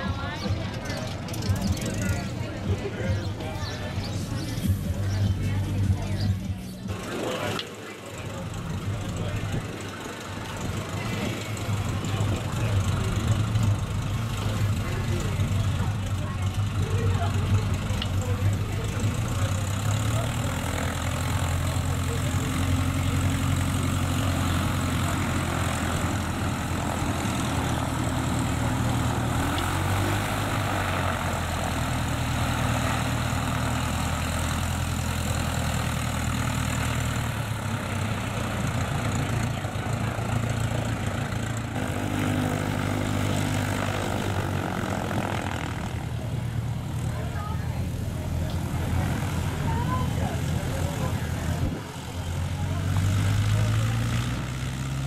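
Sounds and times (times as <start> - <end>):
light aircraft engine and propeller: 0.0 - 55.0.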